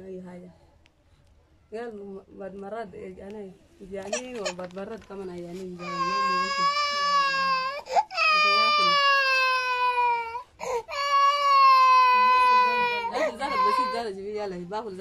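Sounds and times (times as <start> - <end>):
toddler crying: 5.8 - 14.0.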